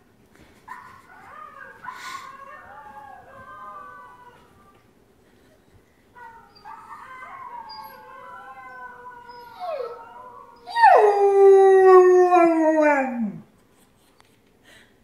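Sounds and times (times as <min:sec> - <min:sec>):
dog howling: 0:01.2 - 0:04.8, 0:06.2 - 0:13.4.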